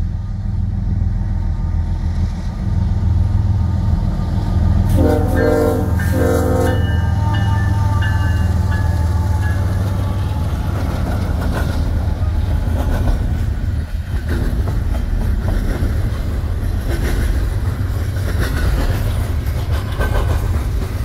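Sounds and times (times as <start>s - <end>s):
diesel locomotive engine rumble: 0.0s - 21.0s
locomotive air horn blasts: 4.9s - 10.5s.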